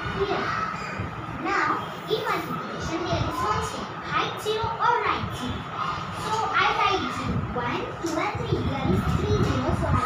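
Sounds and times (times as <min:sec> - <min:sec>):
girl talking: 0:00.0 - 0:10.0.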